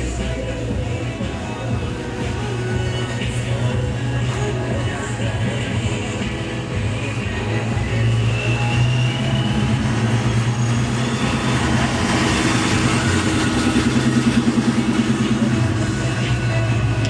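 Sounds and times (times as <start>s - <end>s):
car engine rumbling: 0.0s - 17.0s.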